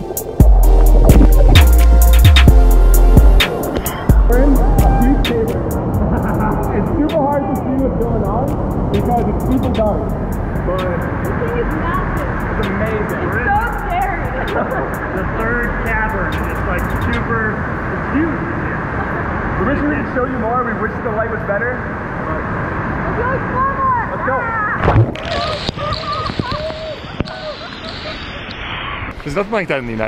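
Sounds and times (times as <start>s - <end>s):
people talking with echo: 3.8s - 27.6s
people laughing: 3.9s - 7.6s, 14.1s - 15.3s, 18.7s - 19.6s, 25.2s - 28.5s.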